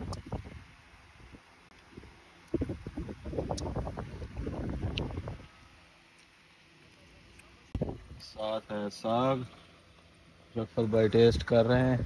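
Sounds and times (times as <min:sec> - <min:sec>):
buffeting rumble on microphone: 0:00.0 - 0:05.6, 0:07.7 - 0:08.4.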